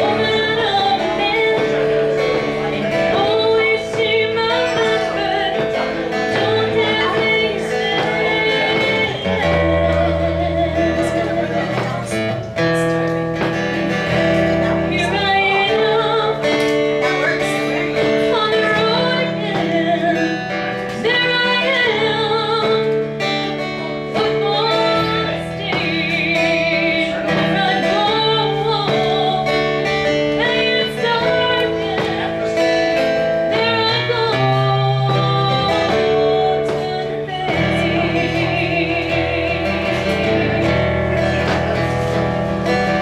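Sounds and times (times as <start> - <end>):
woman singing with vibrato: 0.0 - 12.3, 14.0 - 16.8, 17.4 - 43.0
guitar accompaniment: 0.0 - 43.0.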